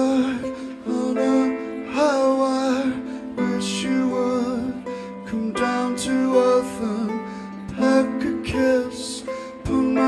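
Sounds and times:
man singing: 0.0s - 10.0s
piano accompaniment: 0.0s - 10.0s
ukulele: 0.0s - 10.0s.

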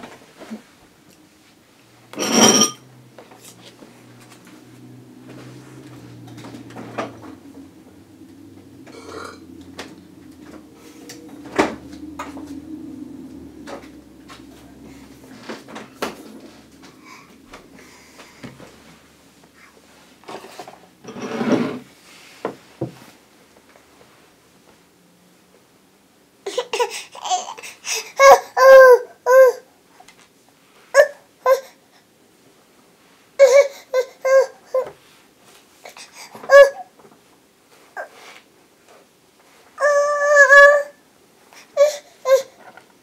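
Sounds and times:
scraping sound: 2.2s - 2.8s
toddler crying: 26.5s - 29.7s, 33.4s - 34.9s, 36.4s - 36.9s, 39.8s - 41.0s, 41.8s - 42.6s.

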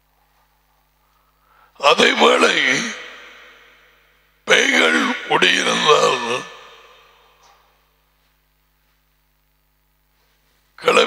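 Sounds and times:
man speaking through headset microphone: 1.8s - 3.5s, 4.5s - 7.1s, 10.8s - 11.0s.

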